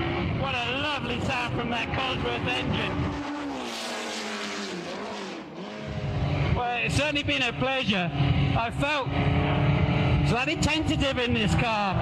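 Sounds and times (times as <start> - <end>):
racing car engine passing: 1.0 - 6.6.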